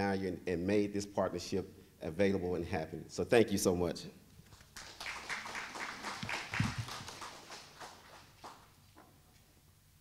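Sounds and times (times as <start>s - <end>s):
audience clapping: 4.5s - 8.8s.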